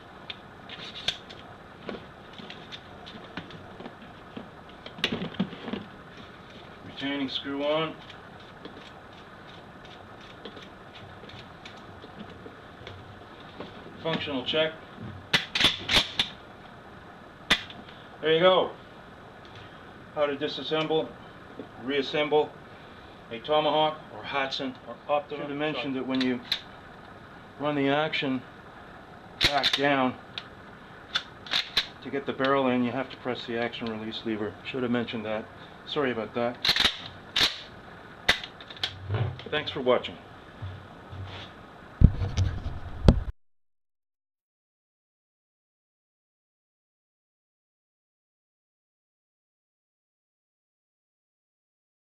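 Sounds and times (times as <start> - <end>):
shotgun handling clicks: 31.1 - 32.0, 36.6 - 37.7, 38.3 - 39.0.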